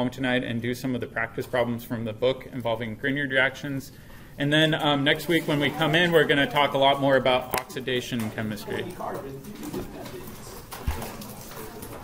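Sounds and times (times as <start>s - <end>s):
murmuring voices: 5.2s - 12.0s.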